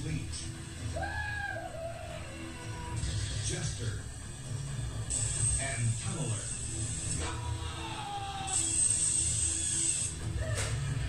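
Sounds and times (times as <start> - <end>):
high drill whine: 5.0 - 7.3, 8.3 - 10.3.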